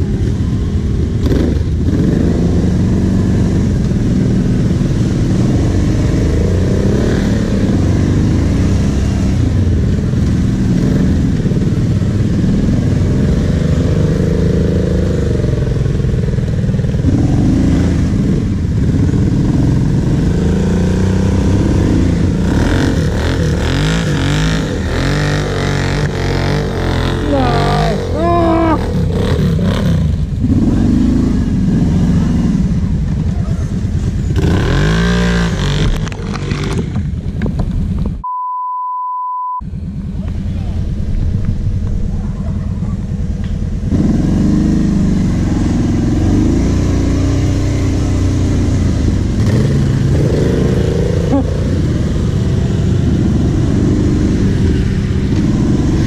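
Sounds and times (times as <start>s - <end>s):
atv engine revving: 0.0s - 37.9s, 39.7s - 56.0s
second quad engine: 0.0s - 38.5s, 39.4s - 56.0s.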